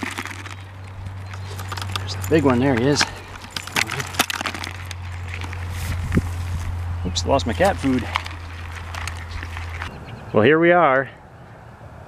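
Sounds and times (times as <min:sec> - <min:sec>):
trap clicking and rattling: 0:00.0 - 0:06.2, 0:07.6 - 0:09.9
crayfish rustling in bucket: 0:00.0 - 0:06.8, 0:07.4 - 0:10.0.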